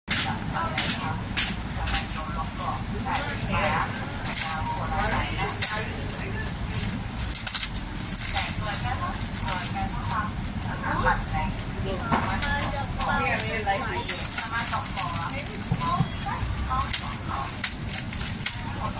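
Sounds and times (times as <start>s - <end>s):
people talking indistinctly: 0.1s - 18.9s
sharp clicks and crackles: 6.6s - 10.7s, 12.4s - 18.9s.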